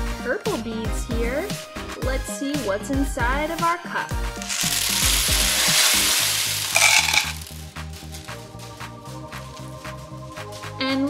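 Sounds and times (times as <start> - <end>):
background music: 0.0 - 11.0
plastic beads clattering onto table: 4.4 - 8.4.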